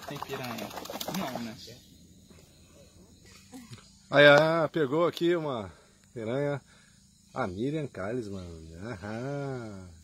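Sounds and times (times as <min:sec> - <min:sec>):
faint low outdoor sound: 0:00.0 - 0:10.0.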